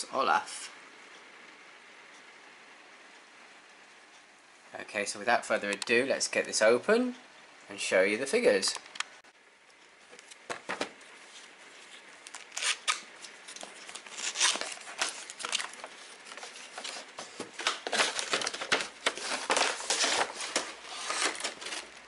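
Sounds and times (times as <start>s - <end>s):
cardboard and plastic packaging rustling: 10.1s - 22.0s.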